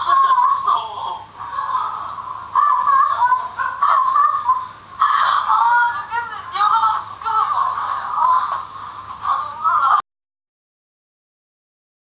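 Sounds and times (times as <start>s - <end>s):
voices laughing through television speaker: 1.4s - 6.3s.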